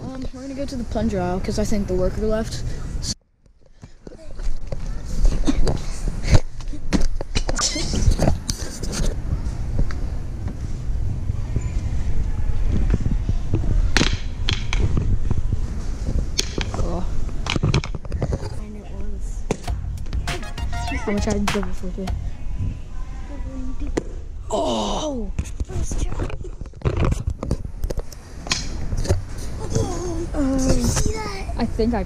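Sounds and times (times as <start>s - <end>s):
camera handling rumble and rustle: 25.4s - 28.2s.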